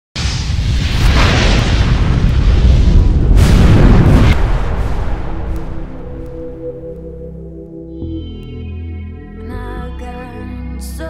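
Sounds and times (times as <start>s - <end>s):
sharp blast: 0.2s - 7.0s
whoosh: 0.2s - 7.2s
deep explosion rumble: 0.2s - 7.4s.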